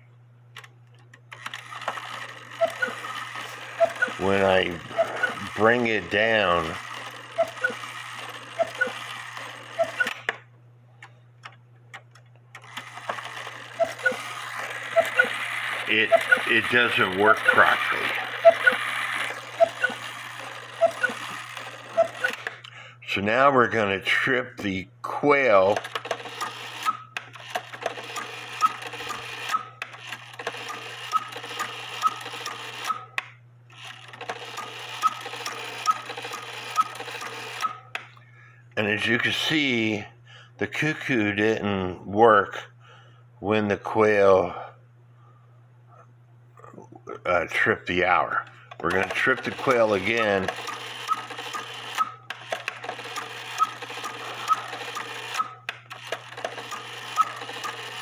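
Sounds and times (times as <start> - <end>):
steady low hum: 0.0 - 58.0
clock movement clicking: 0.6 - 10.4, 11.0 - 22.7, 25.7 - 38.1, 48.4 - 58.0
clock quail calling: 1.6 - 10.3, 12.8 - 22.5, 28.0 - 29.7, 30.6 - 33.0, 34.3 - 37.8, 48.8 - 58.0.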